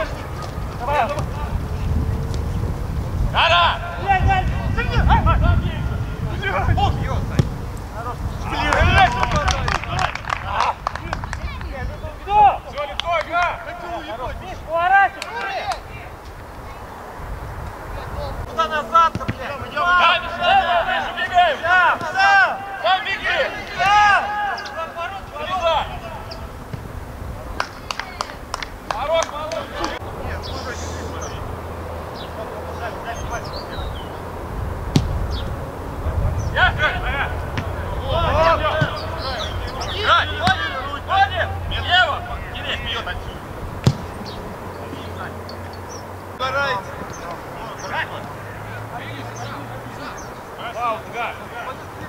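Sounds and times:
steady low rumble: 0.0s - 10.1s
wind rumble on microphone: 0.0s - 14.8s, 15.8s - 18.7s, 25.2s - 28.9s, 29.9s - 47.7s
distant shouts of players: 0.0s - 17.1s, 17.8s - 52.0s.

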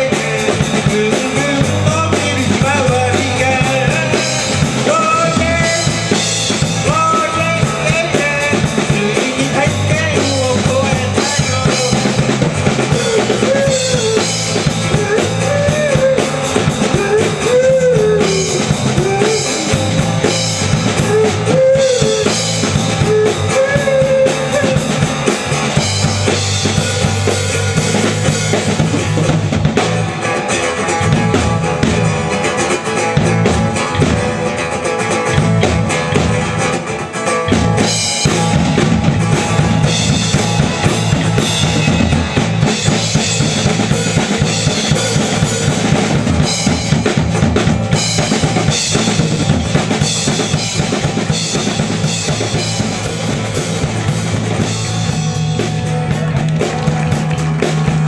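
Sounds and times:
instrumental live band: 0.0s - 58.0s.

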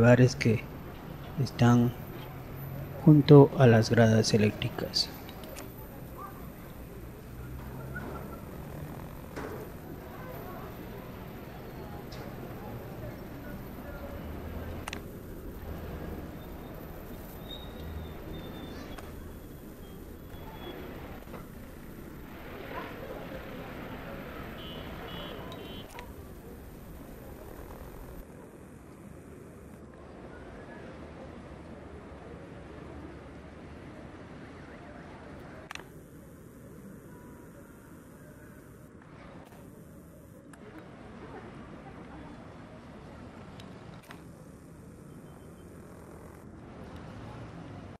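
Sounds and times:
faint distant voices: 0.0s - 48.0s
low street rumble: 0.0s - 48.0s
short high electronic beeps: 16.4s - 21.0s
sharp click: 35.7s - 36.0s.

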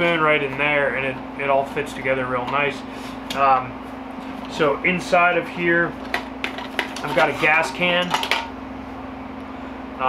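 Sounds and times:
air conditioning hum: 0.0s - 10.0s
gas canister scraping metal cup: 6.5s - 8.2s.

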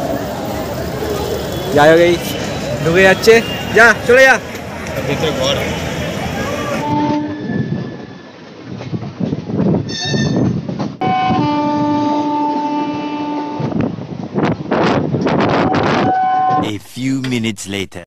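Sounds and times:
electric train running on rails: 0.0s - 16.5s
train horn: 6.6s - 7.9s, 11.0s - 13.8s, 15.7s - 16.6s.

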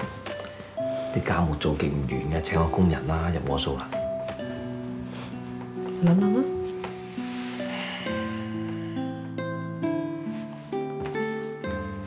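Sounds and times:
plucked-string melody: 0.0s - 12.0s
sustained low notes: 7.5s - 10.1s.

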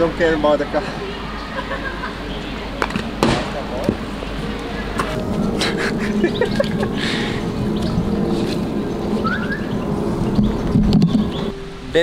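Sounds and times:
background chatter: 0.0s - 9.2s.

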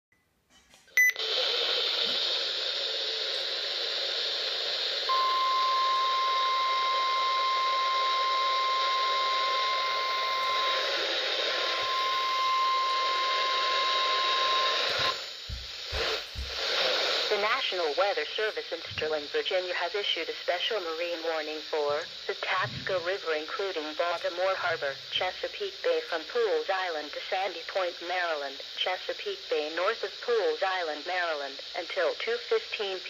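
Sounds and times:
radio static hiss: 1.1s - 33.0s
high alarm beep: 5.1s - 10.9s, 11.7s - 15.2s.

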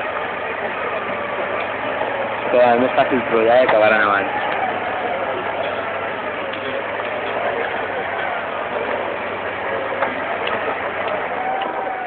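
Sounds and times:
car engine revving under load: 0.0s - 12.0s
people talking: 2.4s - 12.0s.

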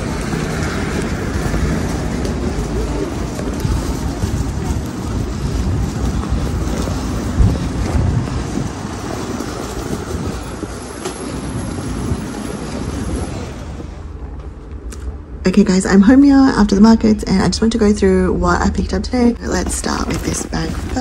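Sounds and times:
wind buffeting microphone: 0.0s - 17.7s.

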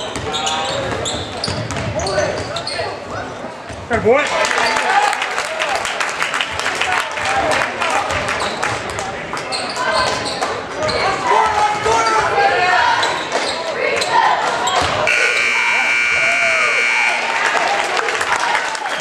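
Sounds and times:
basketball bouncing: 0.9s - 2.5s
crowd voices calling out: 9.5s - 19.0s
scoreboard buzzer: 15.1s - 17.7s.

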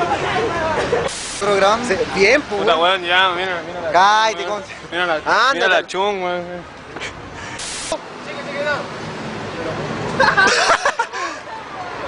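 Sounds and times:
short hiss: 1.1s - 1.6s, 7.4s - 8.0s.

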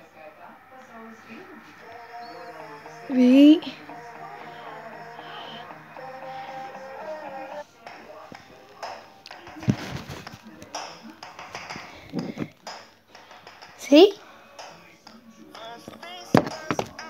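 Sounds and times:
faint music through headphones: 0.0s - 17.0s.

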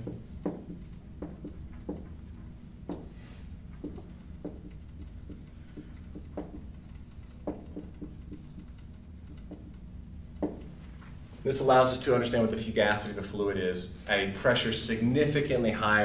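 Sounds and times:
marker writing on whiteboard: 0.0s - 10.9s
low room hum: 0.0s - 16.0s.

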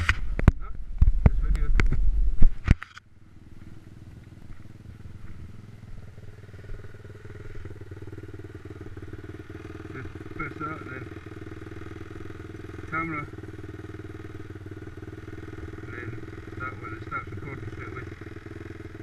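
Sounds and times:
motorbike engine idling: 0.0s - 19.0s.

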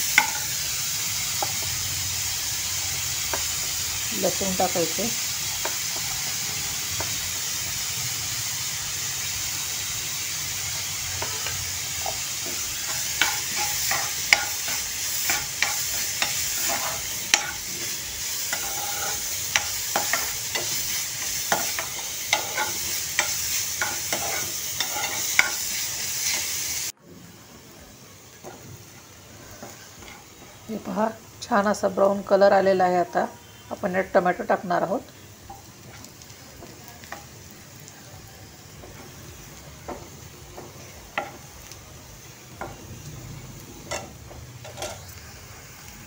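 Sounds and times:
onion sizzling in a pan: 0.0s - 46.0s
spoon scraping and clinking pan: 43.9s - 45.1s.

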